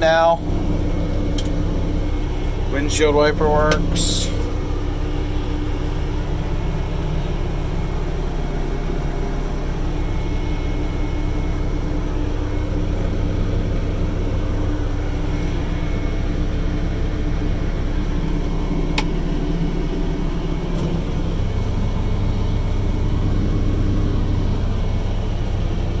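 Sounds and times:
air conditioning blowing: 0:00.0 - 0:26.0
diesel engine idling: 0:00.0 - 0:26.0.

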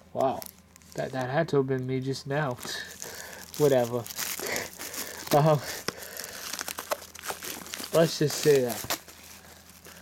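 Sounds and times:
plastic shrink wrap crinkling: 0:00.0 - 0:10.0.

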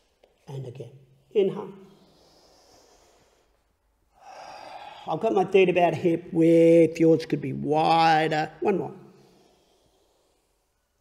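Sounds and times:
faint airy in-breath: 0:01.8 - 0:05.1, 0:09.1 - 0:11.0.

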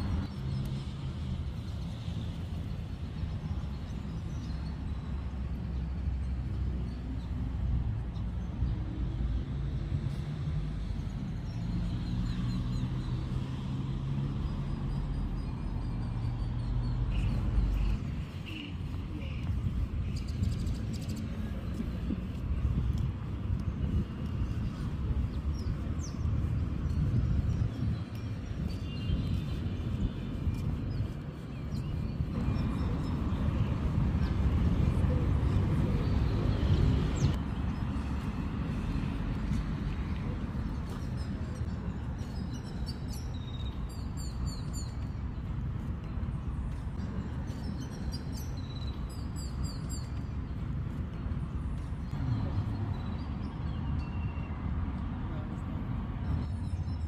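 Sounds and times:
small birds chirping: 0:10.1 - 0:54.6.

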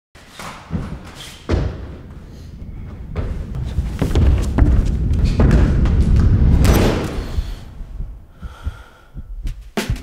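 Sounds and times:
heavy thuds: 0:00.7 - 0:10.0.

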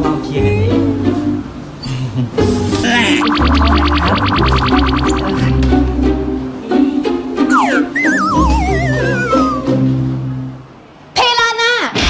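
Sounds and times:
background music: 0:02.4 - 0:10.7
comic falling whistle effect: 0:02.8 - 0:05.6, 0:07.5 - 0:09.9.

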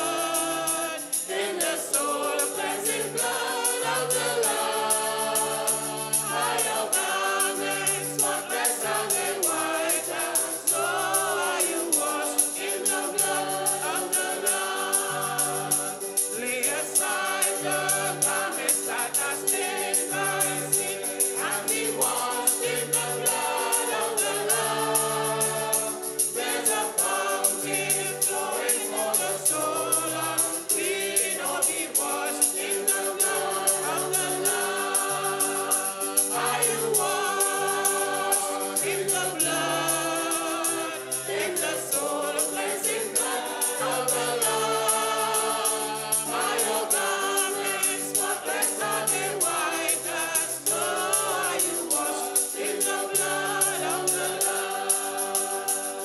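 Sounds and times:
choir singing in harmony: 0:00.0 - 0:56.0
tambourine beat: 0:00.0 - 0:56.0.

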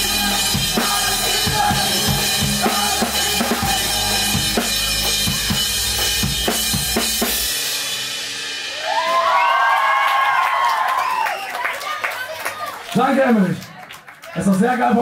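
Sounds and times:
band playing: 0:00.0 - 0:09.4
live drum kit: 0:00.0 - 0:09.6
crowd cheering and screaming: 0:08.7 - 0:12.8.

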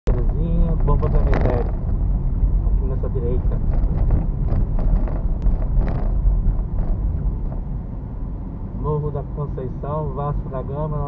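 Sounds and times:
car engine and tyres rumbling: 0:00.1 - 0:11.0.

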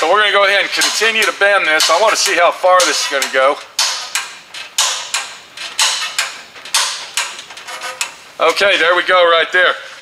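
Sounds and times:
tube bender ratchet clicking: 0:00.7 - 0:08.2.

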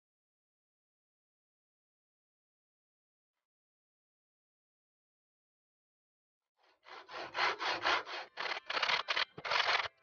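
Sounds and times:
hand saw cutting wood: 0:06.6 - 0:10.0.

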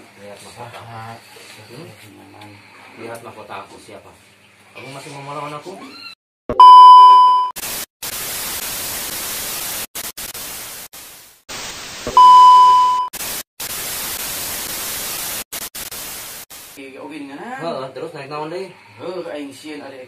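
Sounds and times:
electronic beeps: 0:06.5 - 0:07.5, 0:12.1 - 0:13.1
static hiss: 0:07.6 - 0:16.8.

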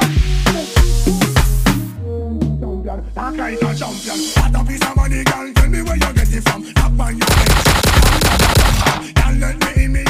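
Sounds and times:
dance music beat: 0:03.5 - 0:10.0
machine-gun burst: 0:07.2 - 0:09.0.

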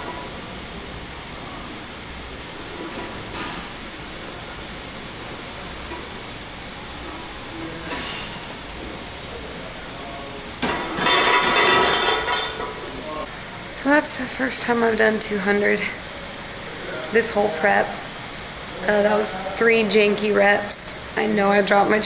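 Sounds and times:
gym room noise: 0:00.0 - 0:22.0
barbell clanking onto rack: 0:10.6 - 0:12.7.

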